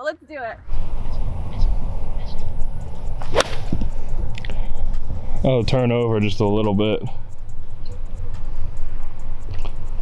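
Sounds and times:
wind rumble on microphone: 0:00.5 - 0:10.0
golf club striking ball: 0:02.9 - 0:04.5.

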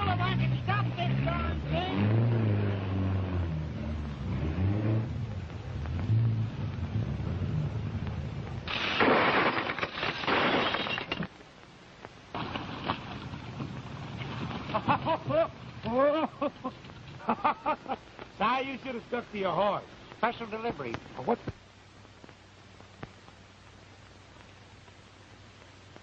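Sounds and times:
loud crash of smashing: 0:08.7 - 0:11.3, 0:12.3 - 0:15.3.

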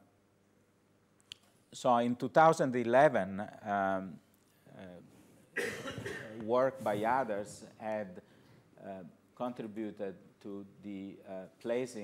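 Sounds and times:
person coughing: 0:05.6 - 0:06.4
person speaking: 0:06.2 - 0:12.0.

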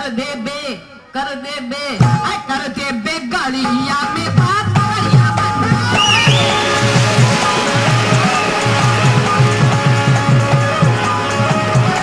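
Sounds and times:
held melodic notes: 0:06.0 - 0:12.0.

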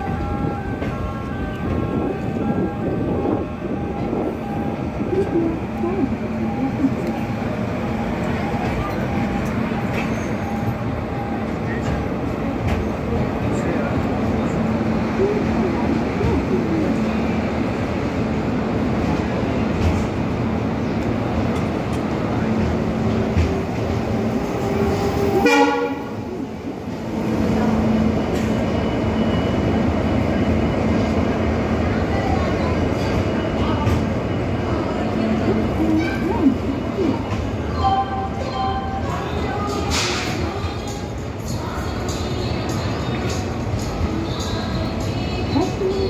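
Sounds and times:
train wheels rumbling: 0:00.0 - 0:46.0
train horn: 0:25.4 - 0:26.2.

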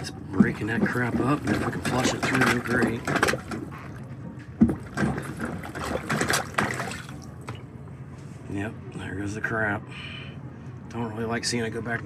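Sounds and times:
plunger sucking and splashing water: 0:00.4 - 0:03.8, 0:04.6 - 0:07.4.

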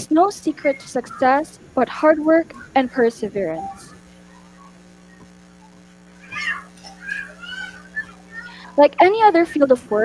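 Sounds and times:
steady low hum: 0:00.0 - 0:10.0
high-pitched animal call: 0:00.5 - 0:08.7.

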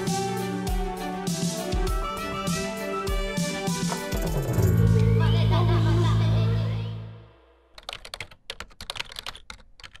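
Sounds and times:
keyboard typing: 0:07.7 - 0:10.0.

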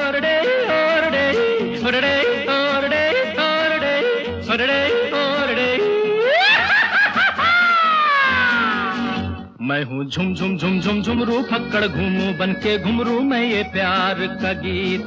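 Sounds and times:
acoustic guitar backing: 0:00.0 - 0:15.0
man yodeling: 0:00.0 - 0:15.0.

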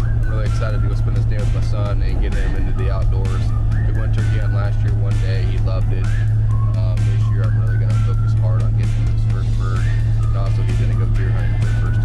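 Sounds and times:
background music: 0:00.0 - 0:12.0
vehicle engine drone: 0:00.0 - 0:12.0
man talking: 0:00.3 - 0:12.0.

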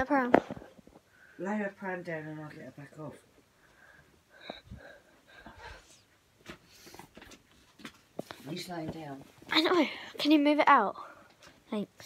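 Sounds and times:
faint breathing: 0:03.4 - 0:07.2.

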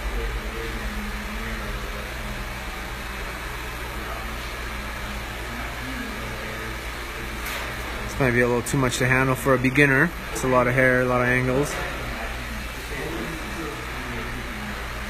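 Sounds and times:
faint voices: 0:00.0 - 0:15.0
machinery humming: 0:00.0 - 0:15.0.

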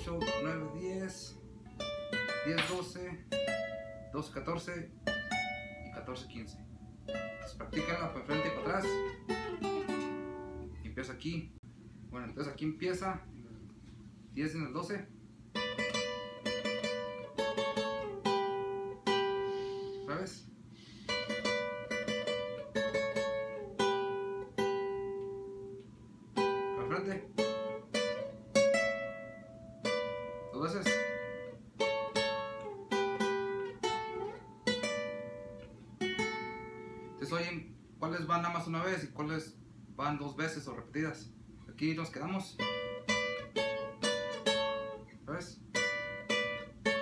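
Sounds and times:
twelve-string acoustic guitar melody: 0:00.0 - 0:10.9, 0:15.5 - 0:20.2, 0:20.8 - 0:37.3, 0:42.6 - 0:47.0.

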